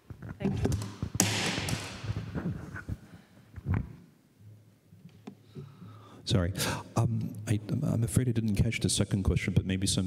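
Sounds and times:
microphone rubbing and rustling: 0:00.0 - 0:04.0.

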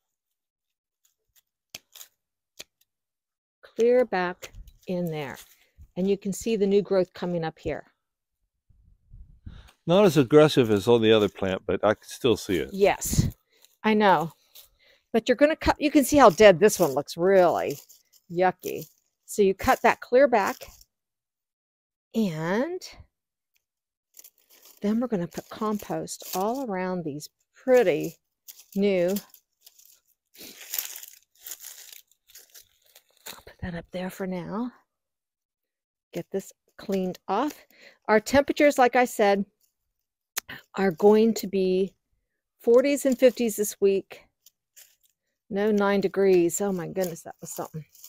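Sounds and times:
dry foliage rustling and crunching: 0:01.3 - 0:02.2, 0:04.4 - 0:05.8, 0:12.5 - 0:14.8, 0:15.6 - 0:20.8, 0:24.1 - 0:26.9, 0:27.7 - 0:33.6, 0:44.4 - 0:48.0
hand pruners snipping stems: 0:01.3 - 0:02.9, 0:15.4 - 0:20.8, 0:24.2 - 0:26.9, 0:27.7 - 0:33.4, 0:42.7 - 0:48.0.

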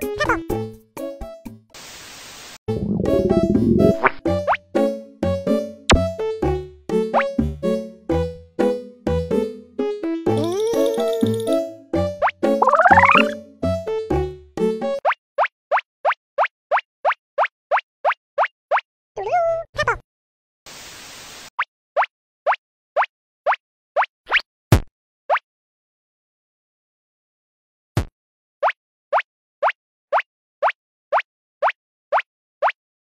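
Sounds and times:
cartoon rising bloop: 0:02.7 - 0:04.2, 0:12.6 - 0:13.4
cartoon blip sweeping up: 0:12.6 - 0:13.4.

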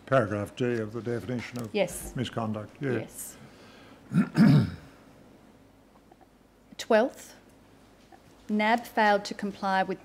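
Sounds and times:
person clearing throat: 0:04.1 - 0:05.0.

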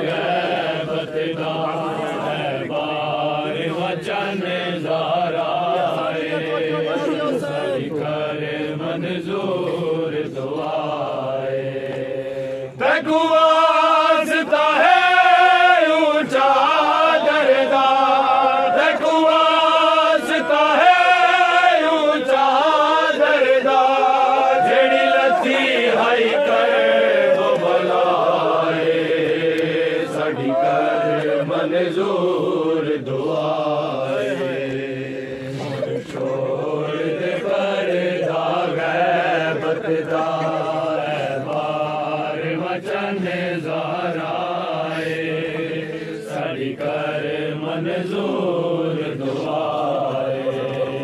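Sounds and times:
men chanting unaccompanied: 0:00.0 - 0:51.0.

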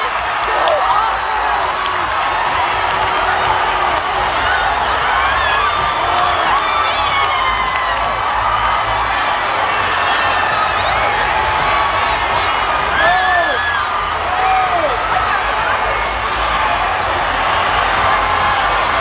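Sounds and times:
large audience cheering: 0:00.0 - 0:19.0.

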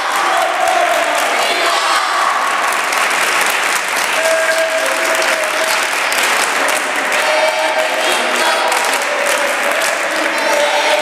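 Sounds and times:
group of people clapping: 0:00.0 - 0:11.0.

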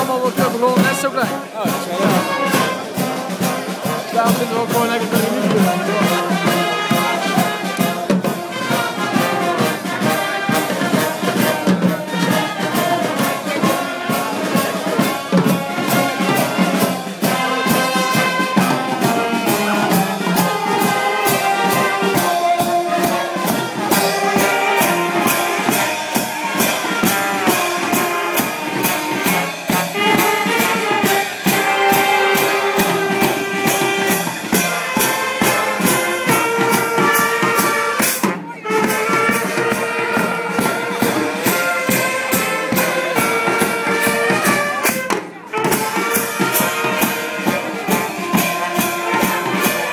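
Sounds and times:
drums and cymbals: 0:00.0 - 0:49.9
wind band playing a tune: 0:00.0 - 0:49.9.

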